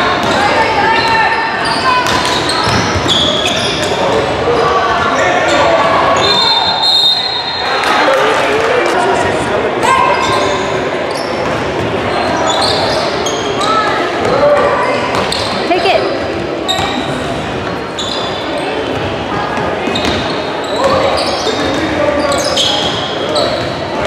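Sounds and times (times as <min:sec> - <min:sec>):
sneakers squeaking on court: 0:00.1 - 0:04.7, 0:10.1 - 0:14.3, 0:15.1 - 0:24.0.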